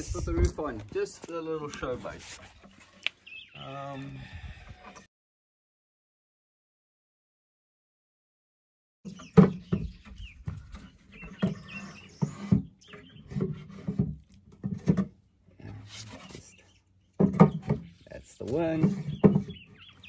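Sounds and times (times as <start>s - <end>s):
animals calling: 9.1s - 13.7s
wood knocking on wood: 9.1s - 15.2s, 17.2s - 19.8s.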